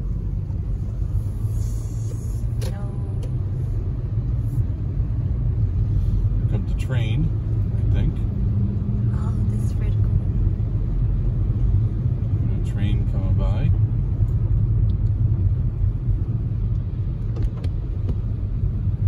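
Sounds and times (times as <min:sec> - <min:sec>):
car driving on slushy road: 0:00.0 - 0:19.0.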